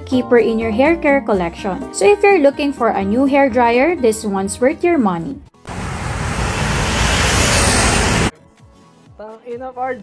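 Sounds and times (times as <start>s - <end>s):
road traffic roar: 5.7s - 8.3s.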